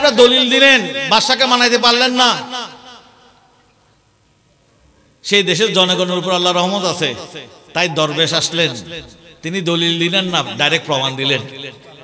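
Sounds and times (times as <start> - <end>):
man preaching over loudspeakers: 0.0 - 3.3, 5.2 - 12.0
faint background hiss: 0.0 - 12.0.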